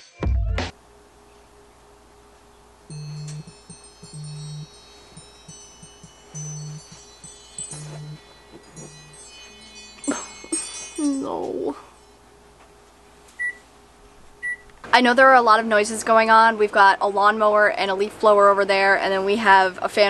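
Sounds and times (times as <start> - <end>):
phone alarm chime ringtone: 2.9 - 10.5.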